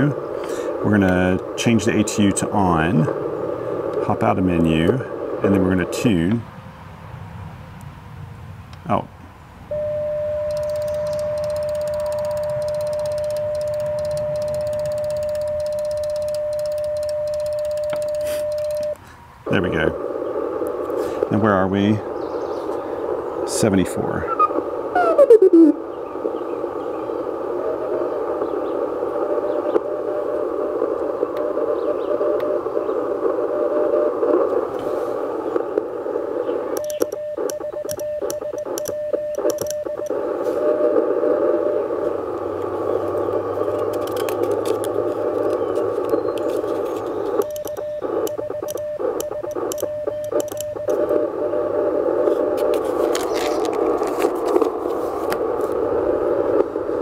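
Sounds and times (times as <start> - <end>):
radio band noise hiss: 0.0 - 7.2, 8.8 - 57.0
morse code tone: 9.7 - 19.0, 36.8 - 40.9, 43.9 - 51.3.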